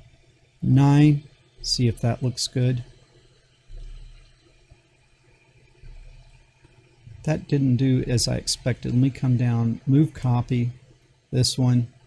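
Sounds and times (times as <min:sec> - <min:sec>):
faint low rumbles: 0:00.0 - 0:12.0.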